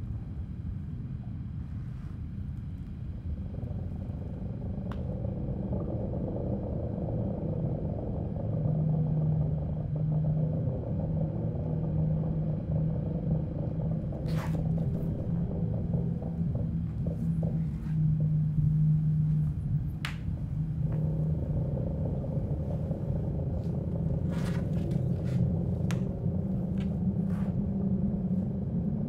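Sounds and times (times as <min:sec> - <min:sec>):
low rumbling drone: 0:00.0 - 0:29.0
steady humming tone: 0:00.0 - 0:29.0.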